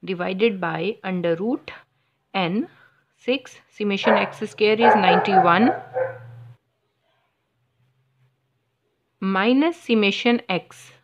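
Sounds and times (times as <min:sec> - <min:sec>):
woman speaking: 0:02.4 - 0:06.1.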